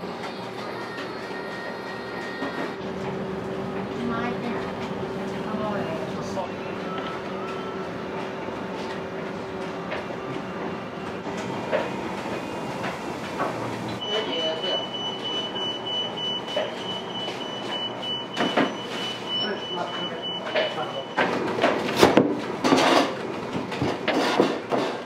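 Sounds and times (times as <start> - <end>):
mechanical hum and hiss: 0.0 - 25.0.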